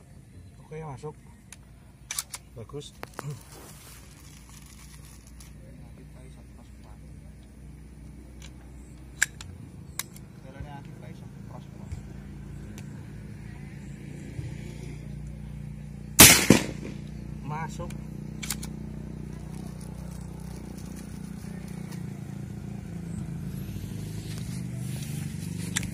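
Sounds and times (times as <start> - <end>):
vehicle engine low hum: 0.0 - 25.9
sharp clicks: 1.4 - 3.2, 8.4 - 11.0, 17.8 - 18.8, 25.5 - 25.9.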